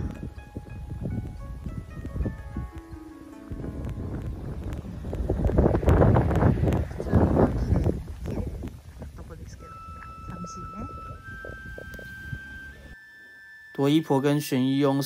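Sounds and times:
background music with held notes: 0.0 - 6.0, 9.7 - 15.0
wind buffeting microphone: 0.0 - 13.0.

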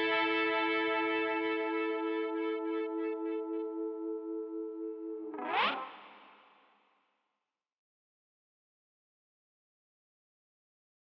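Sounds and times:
rising pitch sweep: 0.0 - 6.2
electric guitar chord: 0.0 - 6.3.

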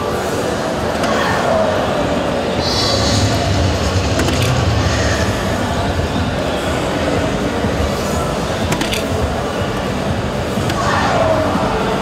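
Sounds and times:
crowd din in large hall: 0.0 - 12.0
electronic dart machines: 2.6 - 6.2, 7.8 - 9.4.

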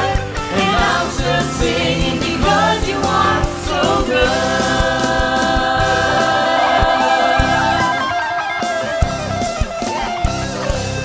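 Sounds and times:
women singing worship song: 0.0 - 8.1
band playing: 0.0 - 11.0
steady drum beat: 0.0 - 11.0.

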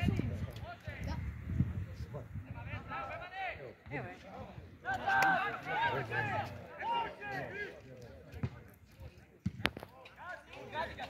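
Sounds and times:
football being kicked: 9.4 - 9.8.

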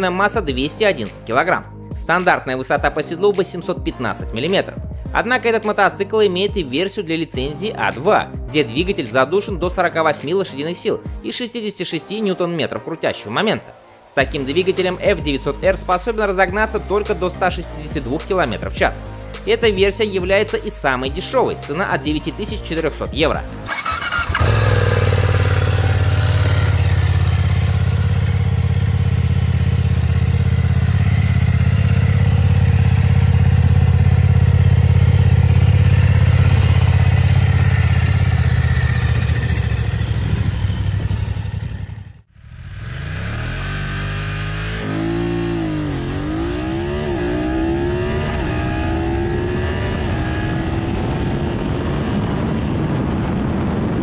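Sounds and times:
motorcycle accelerating hard: 23.6 - 54.0
motorcycle engine idling: 23.7 - 42.3.

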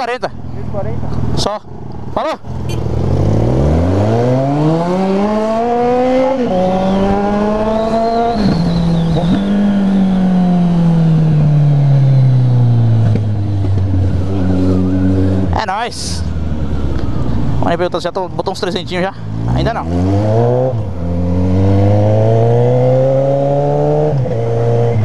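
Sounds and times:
motorcycle engine accelerating: 2.6 - 25.0.

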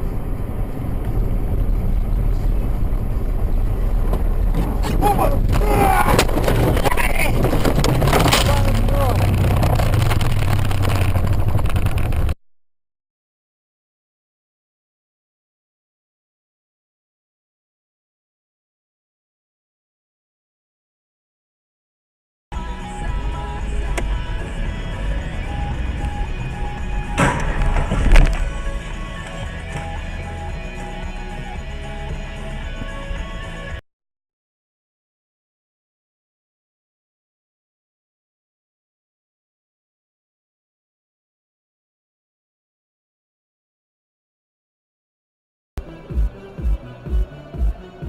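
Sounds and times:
car engine running: 0.0 - 12.4, 22.6 - 33.7
car crash jolts and knocks: 4.2 - 12.2, 27.0 - 28.7
people crying out: 5.0 - 6.3
background music: 22.5 - 33.8, 45.8 - 48.0.

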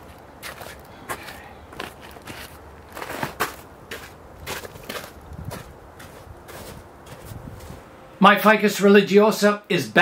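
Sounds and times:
footsteps crunching on snow: 0.0 - 7.9.

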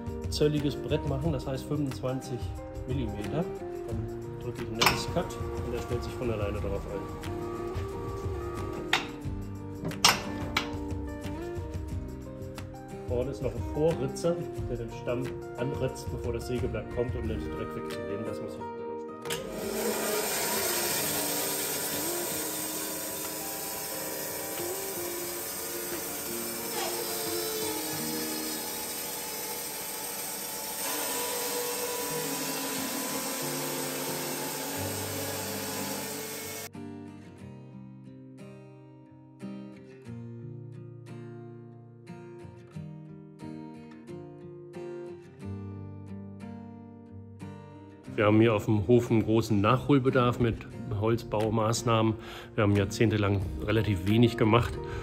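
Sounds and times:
plucked guitar music: 0.0 - 29.4, 31.7 - 55.0
band sawmill cutting log: 4.7 - 9.2, 19.3 - 36.7.

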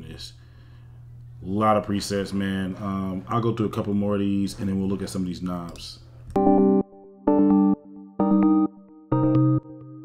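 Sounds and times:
synth chords: 6.3 - 10.0.

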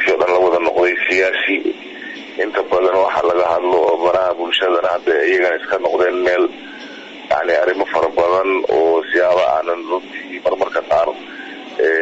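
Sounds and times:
narrator speaking: 0.0 - 6.6, 7.3 - 12.0.

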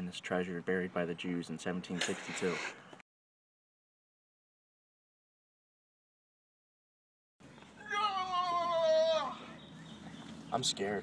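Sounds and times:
long wailing cry: 7.8 - 9.6.

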